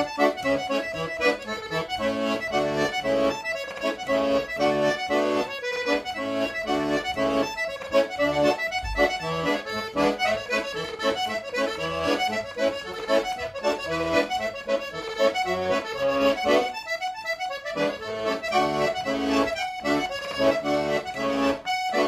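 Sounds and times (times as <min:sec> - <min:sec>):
piano accordion folk tune: 0:00.0 - 0:22.0.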